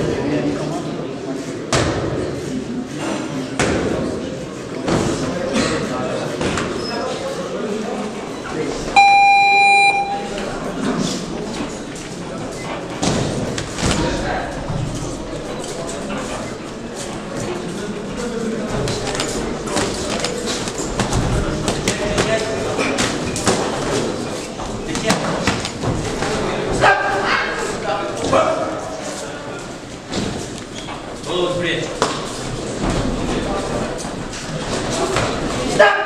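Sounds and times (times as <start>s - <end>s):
footwork on ring canvas: 11.0s - 35.8s.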